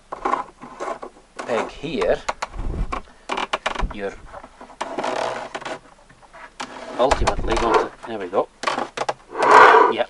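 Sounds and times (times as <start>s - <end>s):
creaking wooden scrape: 4.6s - 7.9s, 9.3s - 10.0s.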